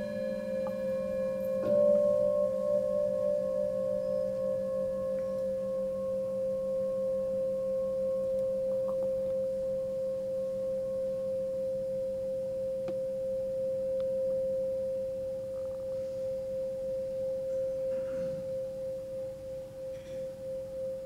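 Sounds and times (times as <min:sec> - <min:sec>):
singing bowl ringing: 0:00.0 - 0:21.0.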